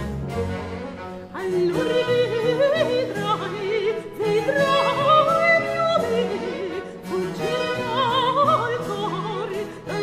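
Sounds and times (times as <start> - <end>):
bowed string accompaniment: 0.0 - 10.0
soprano singing an ornamented aria: 1.4 - 10.0.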